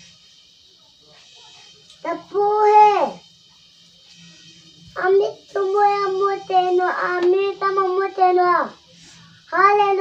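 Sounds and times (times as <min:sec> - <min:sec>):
child chanting prayer syllable: 0:02.0 - 0:03.3, 0:04.9 - 0:10.0.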